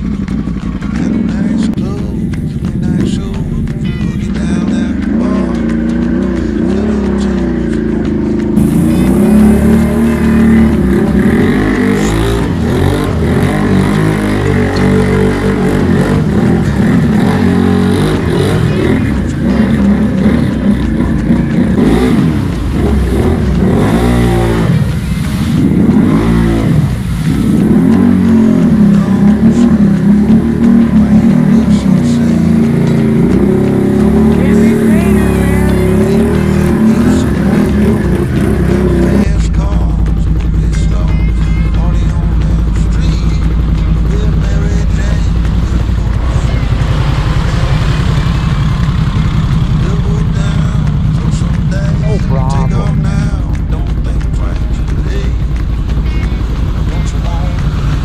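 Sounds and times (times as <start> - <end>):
atv engine revving: 0.0 - 58.0
tyres throwing mud and water: 0.0 - 58.0.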